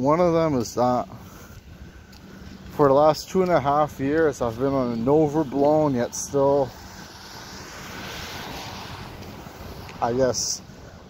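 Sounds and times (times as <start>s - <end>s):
passing vehicle rushing: 0.8s - 11.0s.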